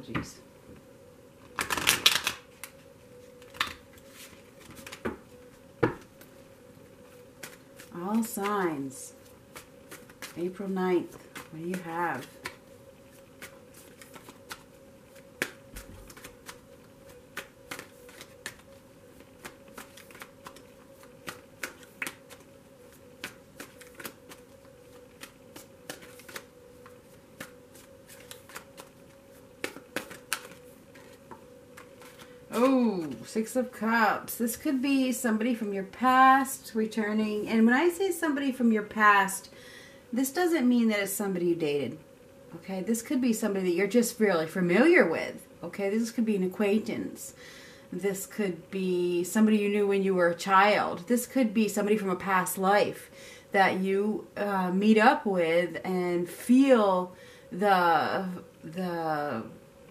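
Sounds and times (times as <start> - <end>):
faint steady hum: 0.0 - 59.9
cards being shuffled: 1.4 - 6.3, 7.3 - 33.3.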